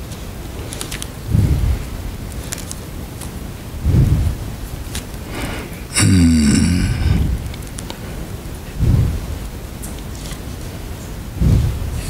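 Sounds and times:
steady hiss: 0:00.0 - 0:12.0
breaths close to microphone: 0:01.3 - 0:02.1, 0:03.8 - 0:09.6, 0:11.3 - 0:12.0
short throaty voiced sound: 0:05.9 - 0:07.4.

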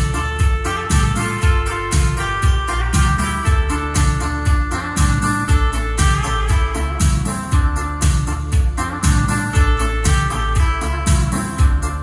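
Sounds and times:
instrumental music with bass beat: 0:00.0 - 0:12.0.

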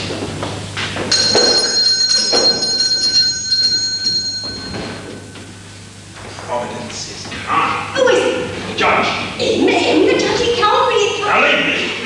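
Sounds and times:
high bell ringing: 0:01.1 - 0:05.6.

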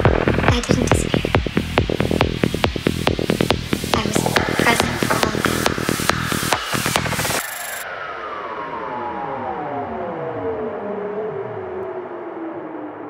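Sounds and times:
psytrance kick and beat: 0:00.0 - 0:07.8
synth chord sliding downward: 0:01.2 - 0:13.0.

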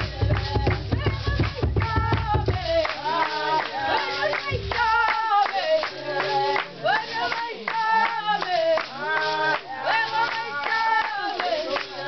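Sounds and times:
rhythmic hand clapping: 0:00.0 - 0:12.0
women singing: 0:00.0 - 0:12.0.

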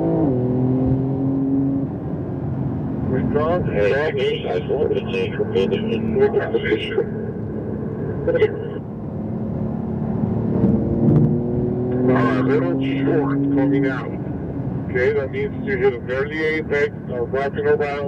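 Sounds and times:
car engine accelerating: 0:00.0 - 0:18.0
road noise inside car: 0:00.0 - 0:18.0
indistinct voices: 0:03.1 - 0:07.3, 0:08.2 - 0:08.8.

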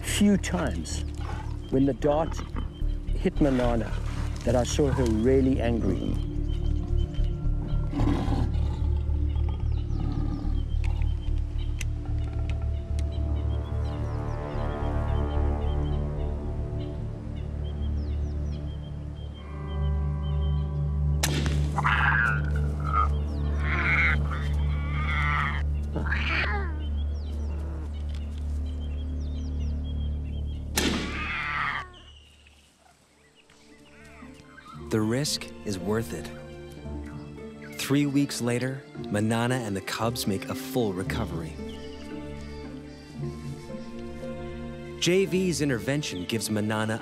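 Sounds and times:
tense documentary score: 0:00.0 - 0:31.8
leopard snarling: 0:01.1 - 0:02.7, 0:07.8 - 0:11.2, 0:21.8 - 0:26.7.

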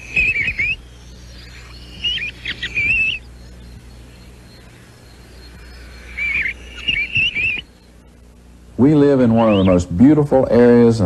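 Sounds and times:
bird whistled chirps: 0:00.0 - 0:08.0, 0:09.2 - 0:09.9
faint low hum: 0:00.0 - 0:11.0.

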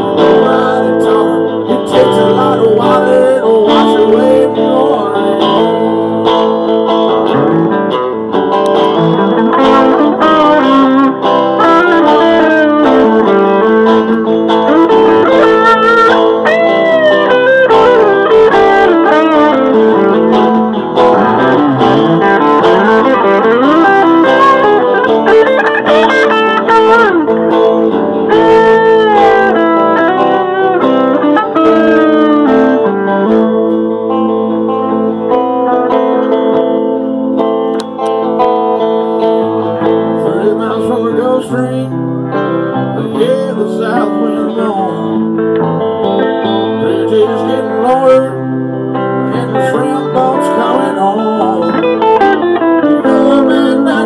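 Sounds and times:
guitar accompaniment: 0:00.0 - 0:54.0
lead guitar solo: 0:00.0 - 0:54.0.

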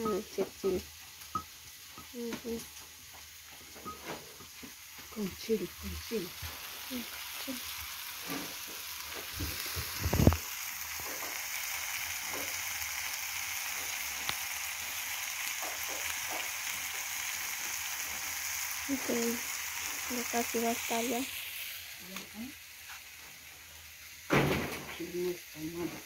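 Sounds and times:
meat sizzling in oil: 0:00.0 - 0:26.0.

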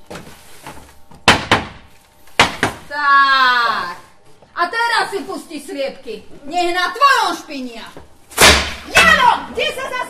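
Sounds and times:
axe hammering wooden gate: 0:01.2 - 0:01.8, 0:02.4 - 0:02.8, 0:08.4 - 0:09.2.

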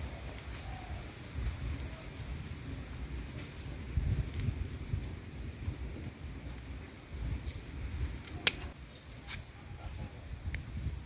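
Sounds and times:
insect chirping trill: 0:00.0 - 0:10.5.

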